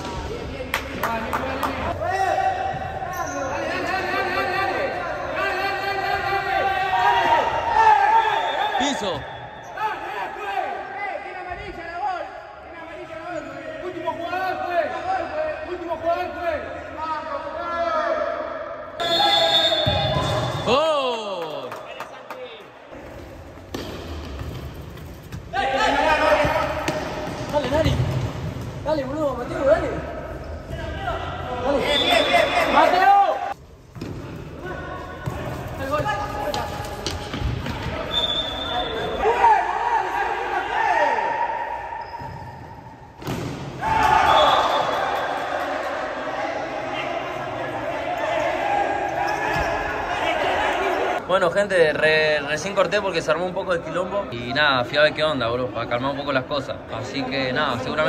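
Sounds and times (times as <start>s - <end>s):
men calling and shouting: 0.0s - 23.2s, 25.4s - 33.6s, 34.2s - 58.0s.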